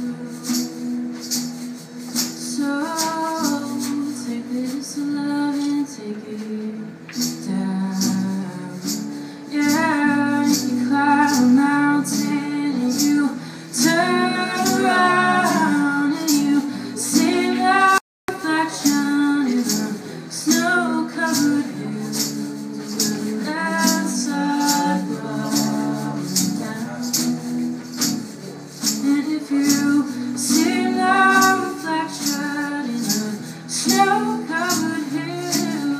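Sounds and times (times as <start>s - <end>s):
woman singing: 0.0s - 1.2s, 2.2s - 27.6s, 28.8s - 35.9s
acoustic guitar: 0.0s - 35.9s
shaker ticking: 0.0s - 35.9s.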